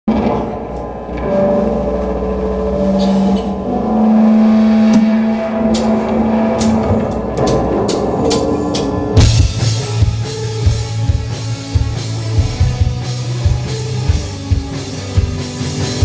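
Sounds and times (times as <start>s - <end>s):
electric guitars and bass playing: 0.1s - 16.0s.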